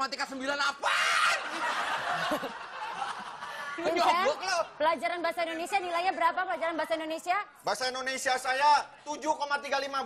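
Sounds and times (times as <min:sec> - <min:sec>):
studio audience laughing: 0:01.4 - 0:04.8.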